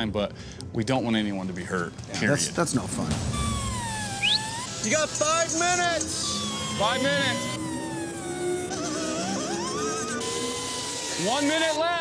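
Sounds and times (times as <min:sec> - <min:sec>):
background music: 0:00.0 - 0:12.0
air grinder on sheet metal: 0:04.6 - 0:11.8.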